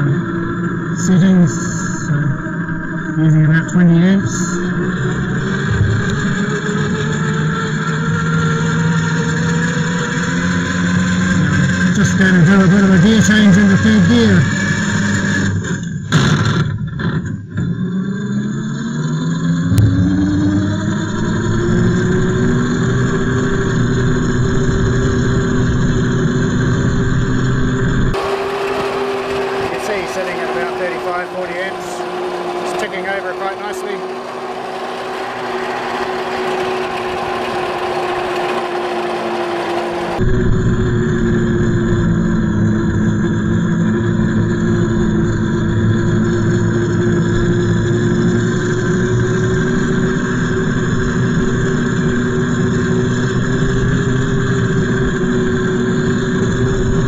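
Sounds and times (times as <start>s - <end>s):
electric motor whine: 0.0s - 57.0s.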